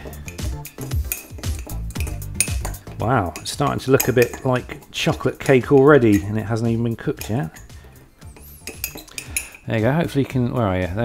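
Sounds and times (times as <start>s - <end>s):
spoon clinking and scraping a mug: 0.0s - 6.4s, 7.0s - 10.4s.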